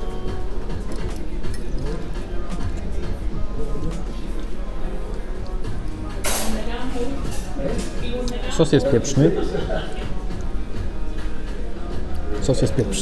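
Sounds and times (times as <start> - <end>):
background music: 0.0 - 13.0
murmur of voices: 0.0 - 13.0.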